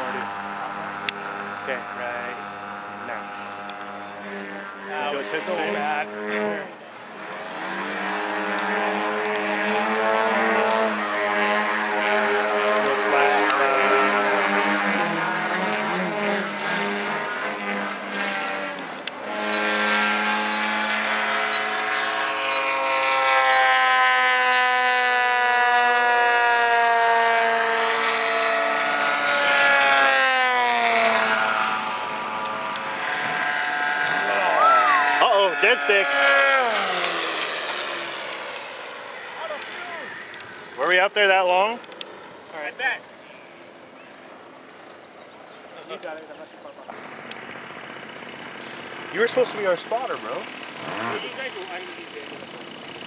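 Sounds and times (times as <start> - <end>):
model plane engines buzzing: 0.0 - 53.0.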